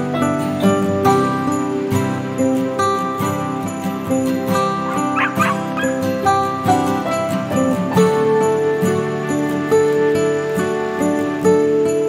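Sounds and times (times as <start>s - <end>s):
music with jingle bells: 0.0s - 12.0s
dog barking: 5.0s - 6.0s.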